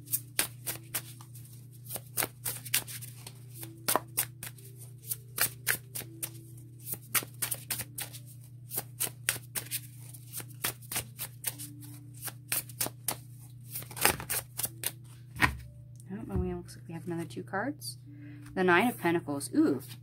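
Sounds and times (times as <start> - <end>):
cards being shuffled: 0.0 - 15.7.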